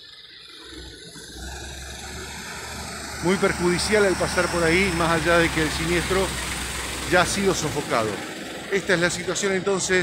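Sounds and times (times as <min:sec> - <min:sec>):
diesel truck engine rumble: 0:00.0 - 0:10.0.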